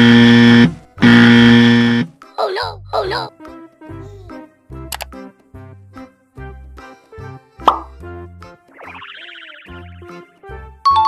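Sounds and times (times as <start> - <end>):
children's music with bass beat: 2.2 - 11.0
sharp click: 4.9 - 5.1
cartoon plop sound effect: 7.6 - 7.9, 8.7 - 10.2.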